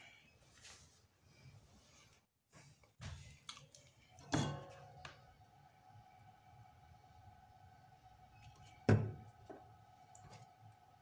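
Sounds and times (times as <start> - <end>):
faint steady hum: 3.0 - 11.0.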